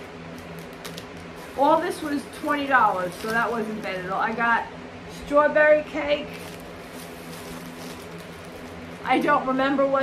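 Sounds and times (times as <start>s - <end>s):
plastic bag rustling: 0.0s - 5.3s, 6.1s - 9.4s.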